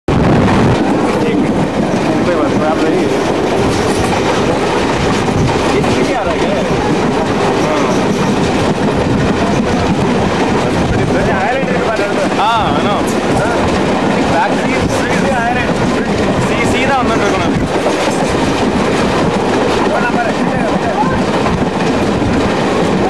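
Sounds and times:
train rolling noise: 0.1 - 23.0
wheels clattering on rails: 0.1 - 23.0
indistinct voices: 0.6 - 21.4.

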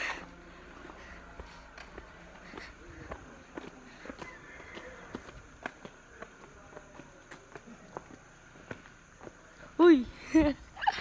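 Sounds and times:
footsteps on concrete: 0.0 - 10.2.

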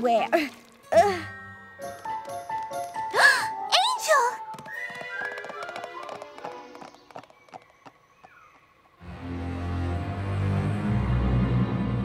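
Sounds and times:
light music: 0.0 - 6.9
cartoon hooves clip-clopping: 1.8 - 9.0.

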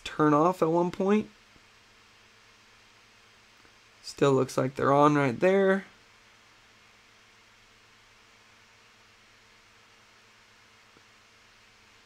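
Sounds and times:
faint hiss and hum: 0.0 - 12.0.

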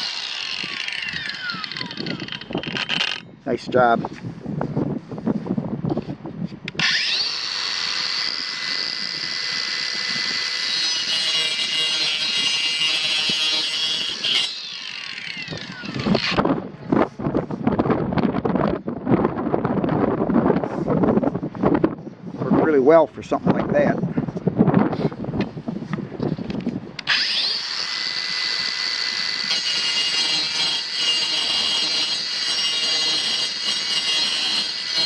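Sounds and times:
circular saw cutting pipe: 0.0 - 3.2, 6.7 - 16.4, 27.0 - 35.0
rustling noise: 4.0 - 6.6.

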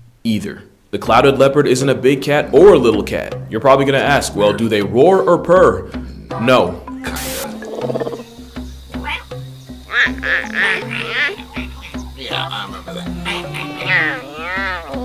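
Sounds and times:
background music: 1.0 - 15.0
leopard cries: 7.5 - 15.0.

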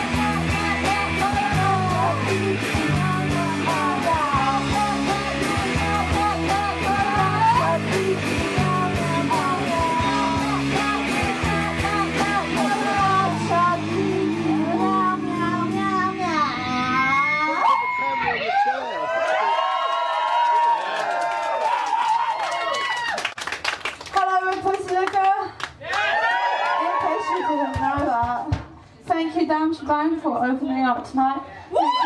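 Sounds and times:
loose electric guitar sounds: 0.0 - 17.6
punk band playing live: 0.0 - 17.6.

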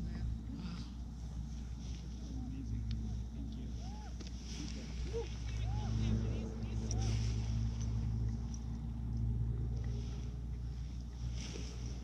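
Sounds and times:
distant engine droning: 0.0 - 12.0.

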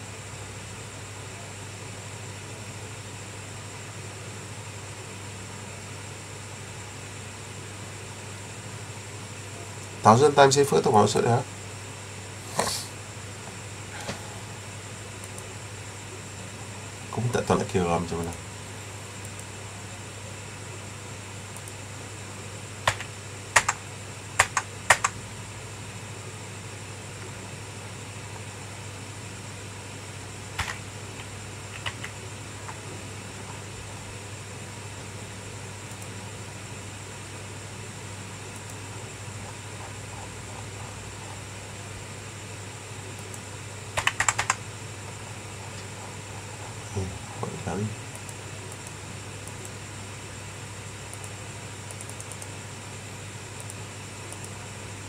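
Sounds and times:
low electrical hum: 0.0 - 55.0
keyboard keystrokes: 22.9 - 23.8, 24.4 - 25.2, 30.6 - 30.8, 31.7 - 32.8, 44.0 - 44.6.

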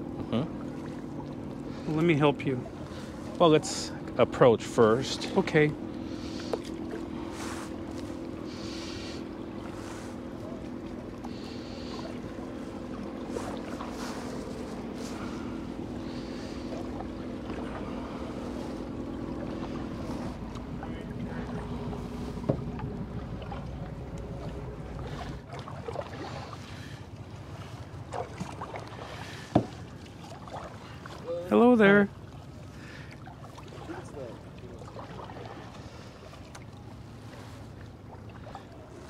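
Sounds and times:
boat engine droning: 0.0 - 39.0
light water noise: 0.0 - 39.0.

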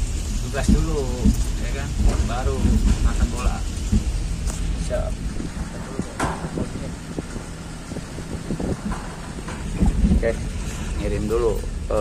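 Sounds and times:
knocks and rattles: 0.0 - 12.0
truck engine rumbling: 0.0 - 12.0.

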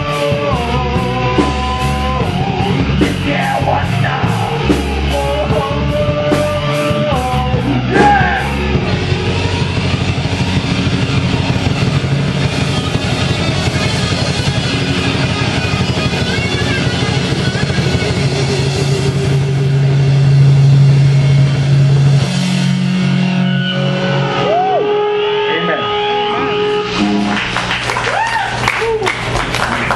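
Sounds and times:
drums and cymbals: 0.0 - 23.4
distorted electric guitars: 0.0 - 29.9
live rock band playing: 0.0 - 29.9.

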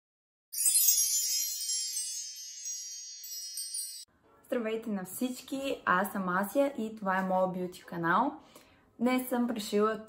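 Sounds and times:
shimmering sparkle chime: 0.5 - 4.1.

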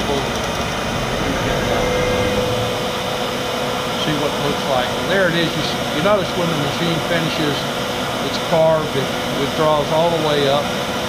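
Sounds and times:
cnc router and dust collector: 0.0 - 11.0.

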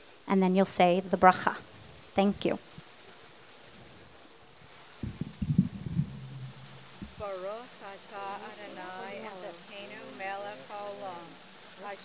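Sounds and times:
outdoor background hiss: 0.0 - 12.0
brief low hum: 5.0 - 7.2
low knocks and thumps: 5.0 - 7.2.

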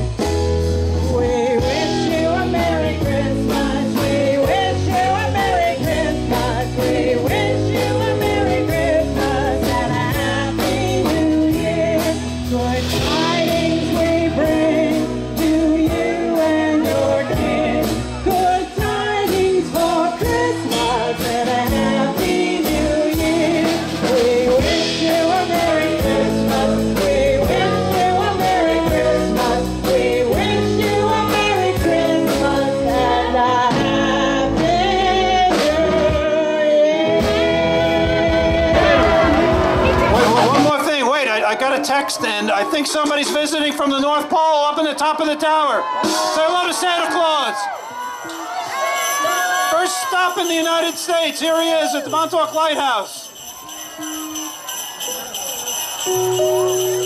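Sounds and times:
live band music: 0.0 - 57.0
steady drum beat: 0.3 - 33.0, 38.0 - 41.1
woman singing into a microphone: 0.9 - 40.2.

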